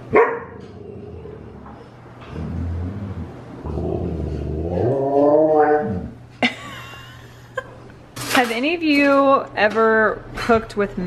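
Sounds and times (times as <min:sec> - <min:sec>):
husky growling: 0:00.6 - 0:06.2.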